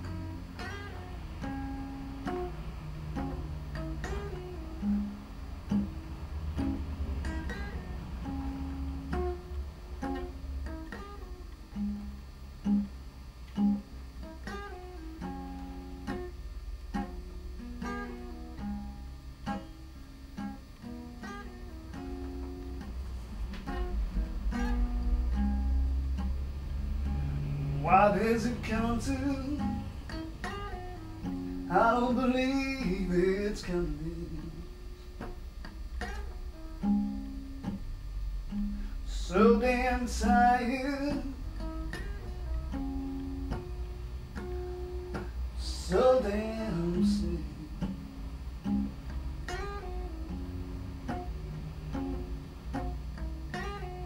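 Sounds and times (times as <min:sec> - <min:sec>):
acoustic blues guitar: 0:00.0 - 0:54.0
man singing: 0:27.8 - 0:29.9, 0:31.7 - 0:34.8, 0:39.1 - 0:41.4, 0:45.6 - 0:48.0.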